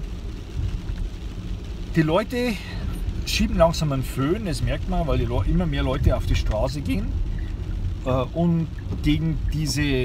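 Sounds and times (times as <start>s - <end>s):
road and tyre rumble in car: 0.0s - 10.0s.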